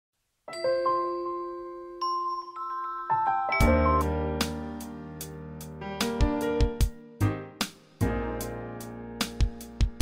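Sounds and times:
bell-like chime jingle: 0.5 - 4.2.

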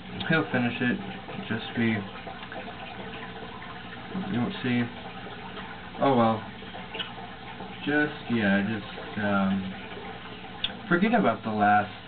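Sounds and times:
water running and trickling: 0.0 - 12.0.

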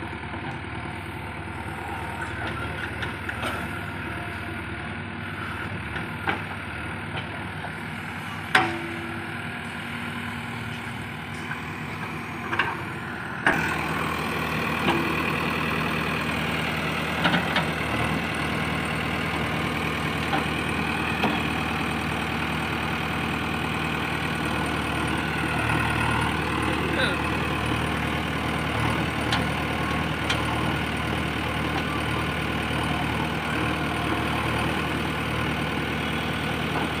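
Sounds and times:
diesel engine running: 0.0 - 37.0.

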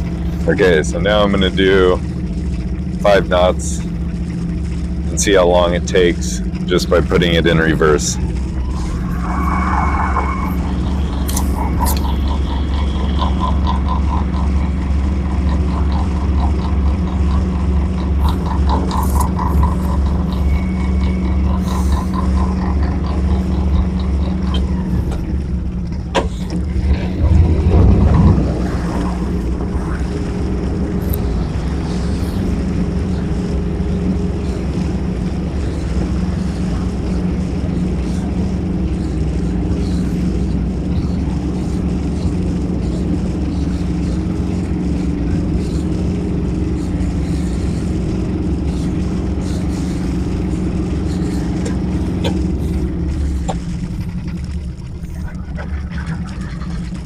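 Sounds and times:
boat engine running: 0.0 - 57.0.

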